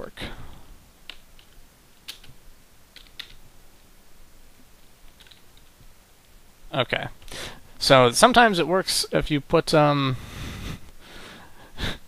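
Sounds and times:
computer keyboard keystrokes: 1.1s - 2.3s, 2.9s - 3.4s, 5.1s - 5.7s.

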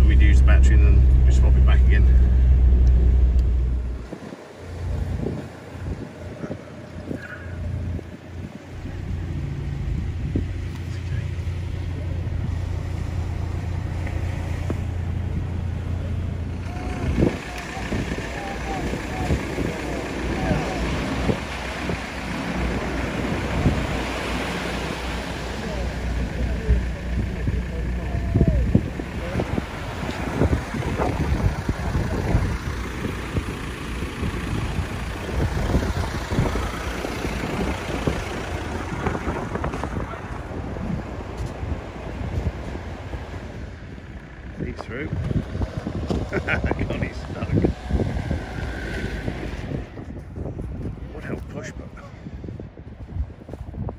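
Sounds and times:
surf: 0.0s - 50.1s
car rumble inside cabin: 0.0s - 51.7s
wind: 0.0s - 53.9s
voices calling out: 10.8s - 42.2s.

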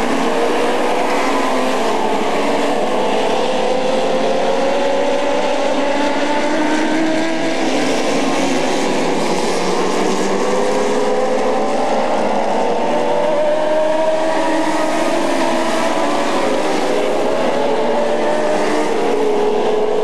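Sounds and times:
race car engines at speed: 0.0s - 20.0s.

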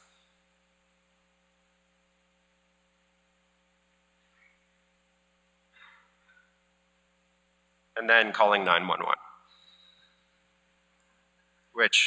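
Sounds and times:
faint electrical hum: 0.0s - 12.0s
man speaking: 8.0s - 9.4s, 11.8s - 12.0s.

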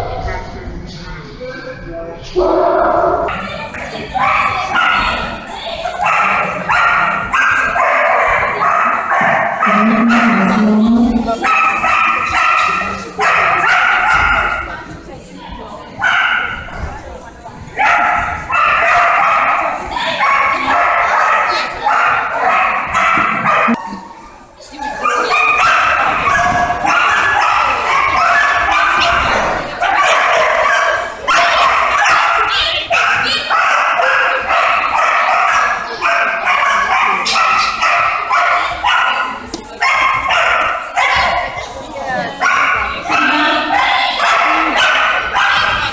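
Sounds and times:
dog barking and yapping: 17.8s - 23.8s, 25.0s - 41.4s, 42.4s - 45.9s.

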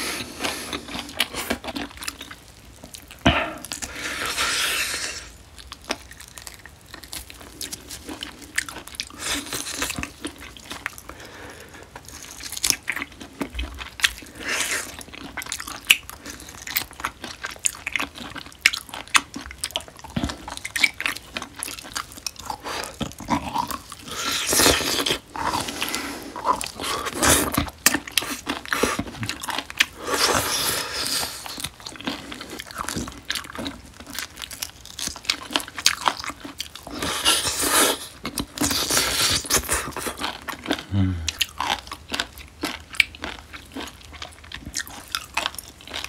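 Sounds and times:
biting and chewing meat: 0.0s - 46.0s.

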